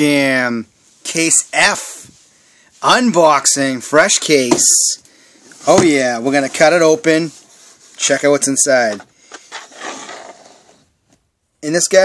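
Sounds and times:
hand scraping cardboard: 8.9s - 10.9s.

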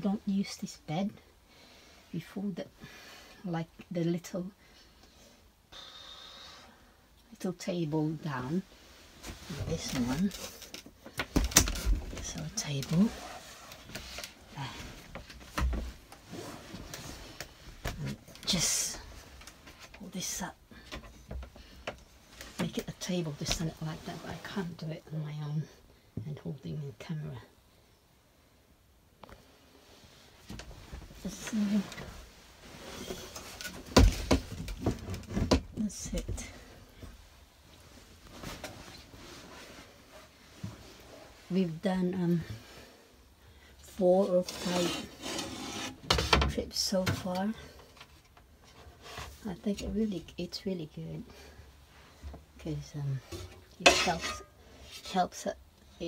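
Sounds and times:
faint breath with high hiss: 4.6s - 7.1s.

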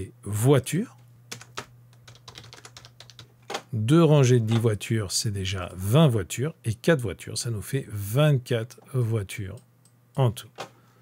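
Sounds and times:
computer keyboard typing: 1.3s - 3.6s.

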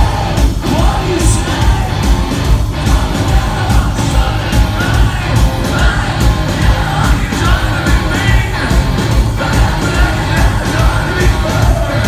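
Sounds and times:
guitars: 0.0s - 12.0s
pounding drum beat: 0.0s - 12.0s
rock band playing live: 0.0s - 12.0s
sung vocals: 0.0s - 12.0s.

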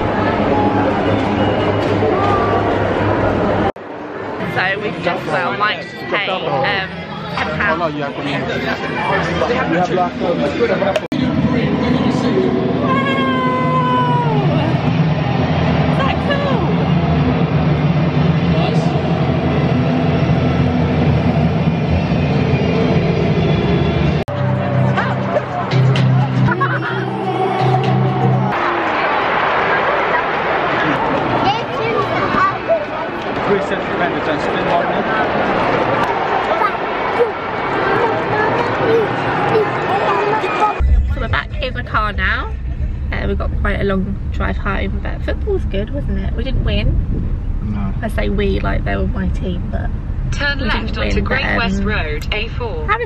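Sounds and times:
stadium crowd hubbub: 0.0s - 46.8s, 47.6s - 53.0s
music over public address: 10.5s - 28.5s
car cabin rumble: 40.8s - 50.6s
woman talking: 41.0s - 42.5s, 43.1s - 46.9s, 48.0s - 53.0s.

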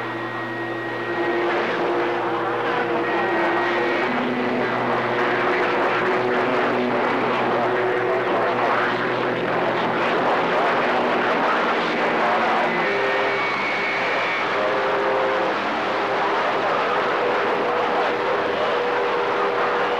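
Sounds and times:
faint steady whistling tones: 0.0s - 19.9s
radio static hiss: 0.0s - 19.9s.

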